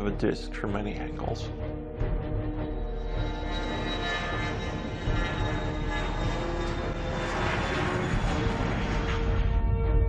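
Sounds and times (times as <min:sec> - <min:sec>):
jet aircraft engine: 0:03.5 - 0:09.7.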